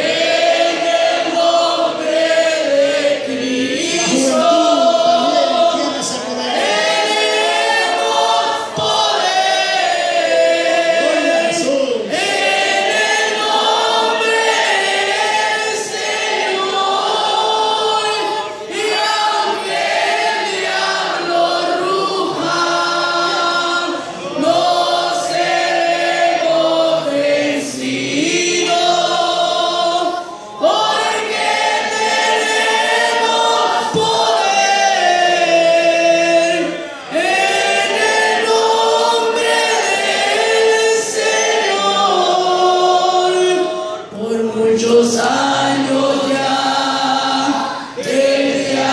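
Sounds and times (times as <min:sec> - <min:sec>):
group of voices singing: 0:00.0 - 0:48.9.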